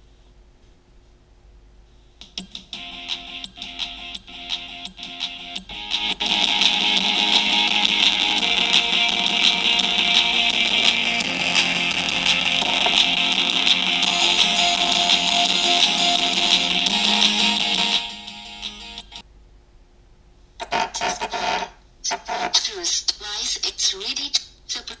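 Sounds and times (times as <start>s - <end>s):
guitar music through small speakers: 2.4s - 19.2s.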